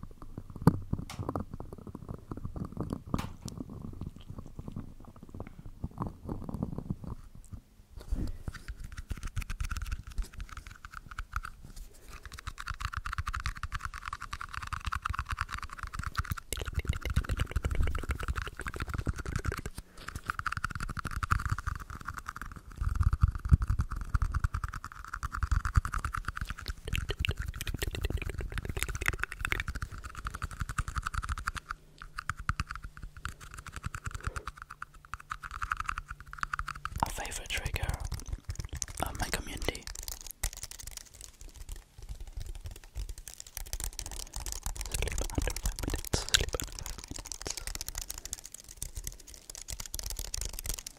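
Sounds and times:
fingertips scratching microphone grille: 8.0 - 50.9.

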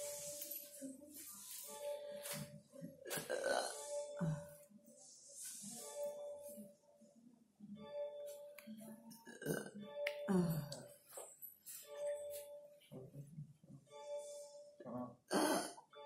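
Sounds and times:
music with held tone: 0.0 - 16.0.

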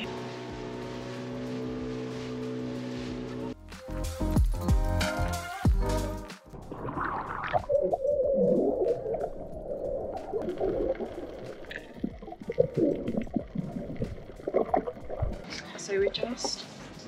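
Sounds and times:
splashing into water: 6.6 - 15.5
muffled underwater gurgling: 6.6 - 16.6
underwater clicks: 7.4 - 15.6.

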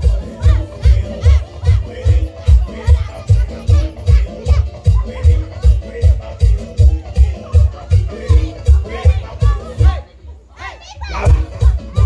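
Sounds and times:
dance music with heavy kick drum: 0.0 - 10.0, 11.1 - 12.0
voices: 0.0 - 12.0.

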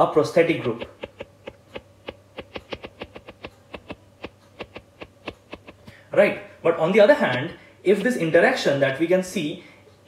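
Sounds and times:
faint low hum: 0.0 - 10.0
stylus tapping on glass screen: 0.8 - 5.8.

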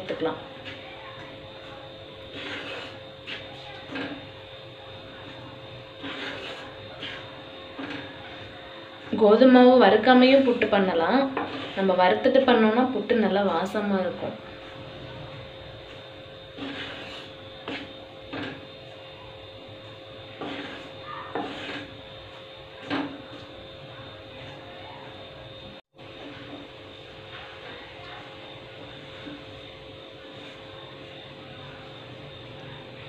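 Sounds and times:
spatula scraping dry flour: 0.0 - 24.8, 26.1 - 32.2.

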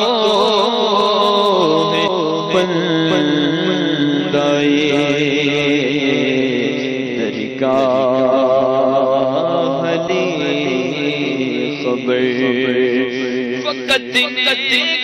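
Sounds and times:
man singing long wavering notes: 0.0 - 15.0.

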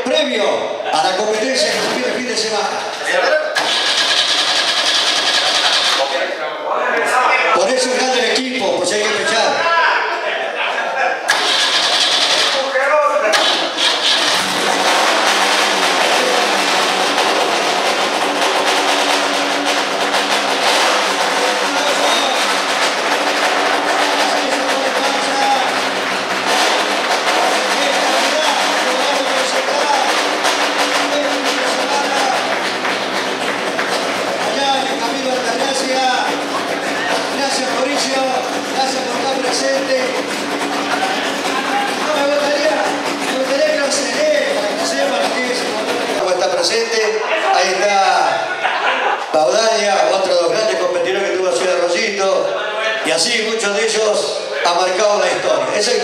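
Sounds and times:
people talking: 0.0 - 3.8, 5.8 - 14.3, 20.9 - 26.0, 27.2 - 32.8, 34.1 - 56.0
race car engine running: 1.2 - 3.0, 3.6 - 6.4, 11.3 - 47.9
people clapping: 15.5 - 38.0.

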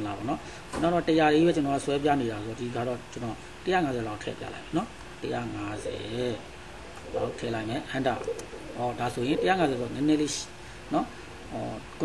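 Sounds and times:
man speaking: 0.0 - 6.5, 7.1 - 12.0.

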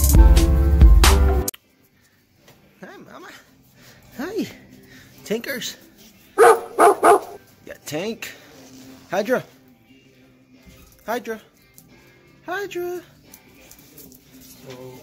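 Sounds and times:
small dog barking: 6.4 - 7.4.

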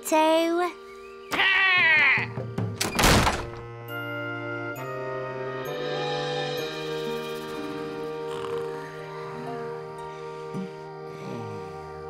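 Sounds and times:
gentle background music: 0.0 - 12.0
wooden door thud: 2.6 - 3.7.

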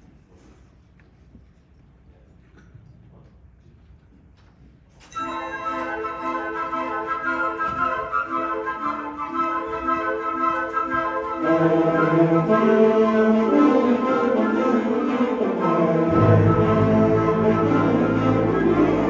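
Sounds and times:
concert band playing: 13.8 - 19.0.

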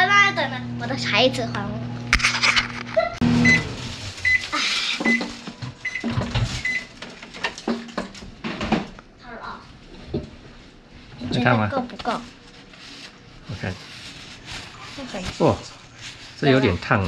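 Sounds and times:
microwave oven humming: 0.0 - 17.0
microwave beeps: 3.2 - 6.9.

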